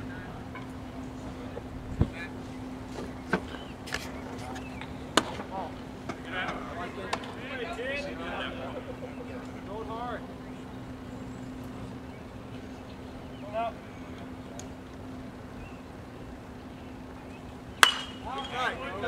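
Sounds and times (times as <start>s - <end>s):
steady low hum: 0.0s - 19.0s
people calling out: 5.4s - 10.8s, 17.8s - 19.0s.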